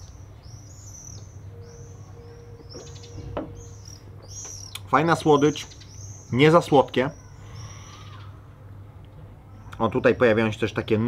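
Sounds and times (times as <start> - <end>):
low background rumble: 0.0 - 11.0
small songbirds chirping: 0.0 - 11.0.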